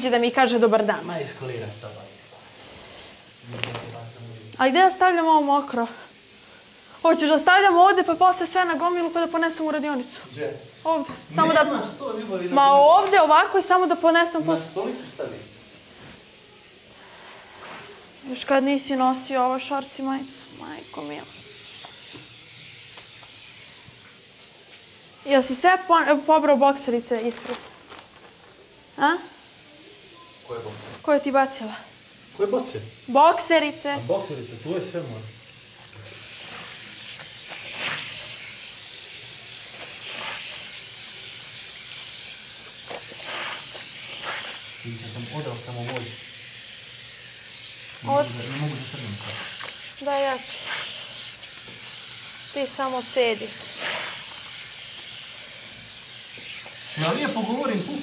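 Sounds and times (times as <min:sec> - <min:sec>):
steady hiss: 0:00.0 - 0:58.0
tap water running into sink: 0:21.4 - 0:24.2, 0:34.2 - 0:46.3.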